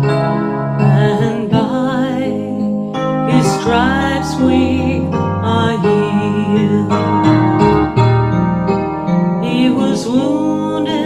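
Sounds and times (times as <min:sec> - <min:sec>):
electric keyboard playing chords: 0:00.0 - 0:11.0.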